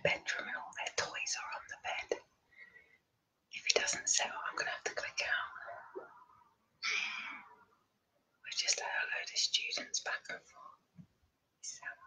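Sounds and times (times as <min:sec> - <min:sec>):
woman whispering: 0:00.0 - 0:02.3, 0:03.5 - 0:06.2, 0:08.4 - 0:10.8, 0:11.6 - 0:12.0.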